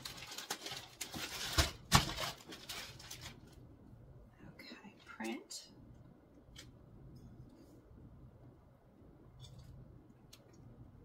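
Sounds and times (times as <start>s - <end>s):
plastic mailer crinkling: 0.0s - 3.6s.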